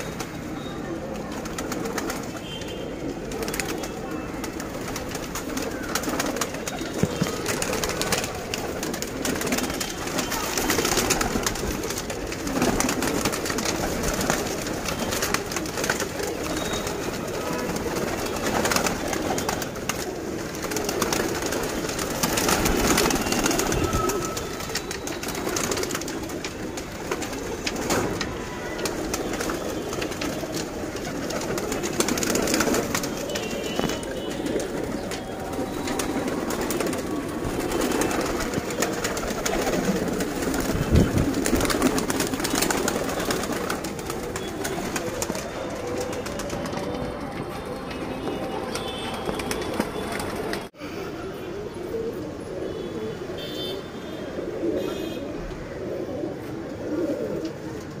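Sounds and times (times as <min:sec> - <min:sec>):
wings flapping: 0:00.0 - 0:50.7
pigeons cooing: 0:00.0 - 0:58.0.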